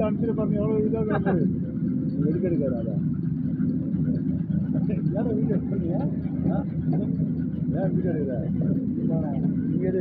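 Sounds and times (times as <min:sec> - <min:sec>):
machine engine low rumble: 0:00.0 - 0:10.0.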